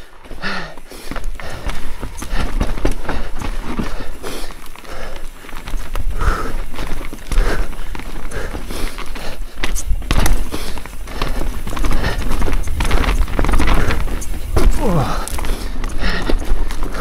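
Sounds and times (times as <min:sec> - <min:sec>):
bike knocking and clattering: 0:00.0 - 0:17.0
bike tyres rumbling on dirt: 0:00.0 - 0:17.0.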